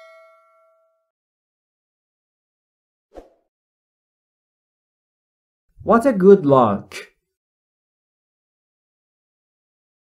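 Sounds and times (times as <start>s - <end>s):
bell-like chime: 0.0s - 1.1s.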